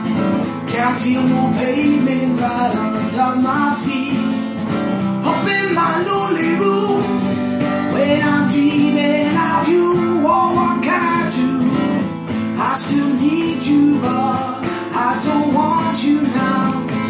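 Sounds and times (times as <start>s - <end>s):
acoustic guitar strumming: 0.0s - 17.0s
man singing: 0.0s - 17.0s.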